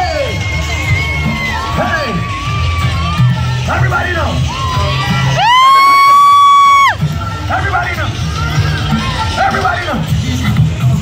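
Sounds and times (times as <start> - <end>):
crowd cheering: 0.0 - 3.6, 4.3 - 7.0
music: 0.0 - 11.0
high-pitched whoop: 5.4 - 7.0.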